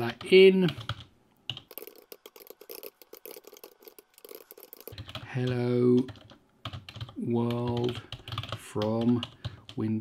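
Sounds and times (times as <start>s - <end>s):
computer keyboard typing: 0.0s - 9.9s.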